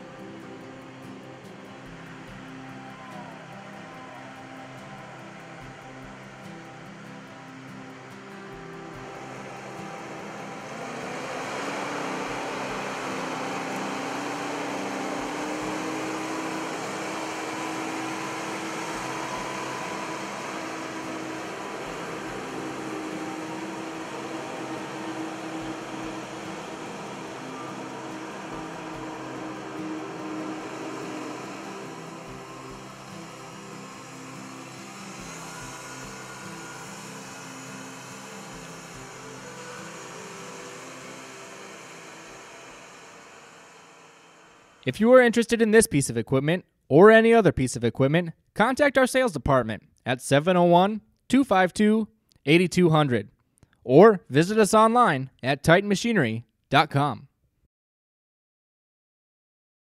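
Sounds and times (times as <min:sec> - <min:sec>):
tractor diesel engine running: 0:03.8 - 0:44.8.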